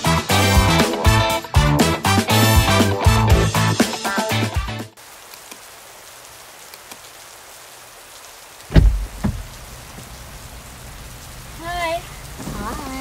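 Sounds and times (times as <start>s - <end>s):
rain on car windshield and roof: 4.9s - 13.0s
car door opening thump: 8.7s - 9.5s.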